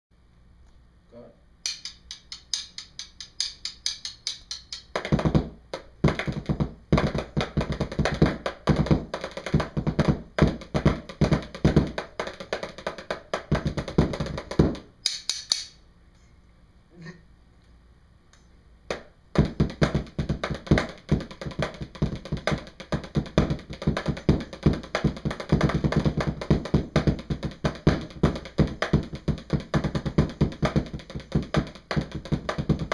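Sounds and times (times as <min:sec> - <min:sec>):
drum sticks clicking: 0:01.6 - 0:05.0, 0:15.0 - 0:15.8
snare and tenor drums playing: 0:01.7 - 0:14.8, 0:19.4 - 0:32.9.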